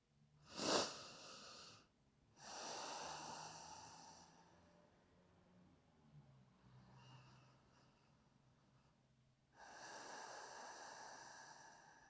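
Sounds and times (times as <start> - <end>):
slow deep breathing: 0.4 - 5.0, 6.6 - 12.0.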